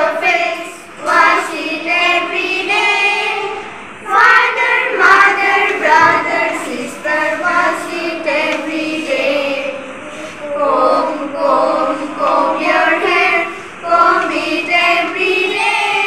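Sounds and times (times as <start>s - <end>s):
young children singing: 0.0s - 16.0s.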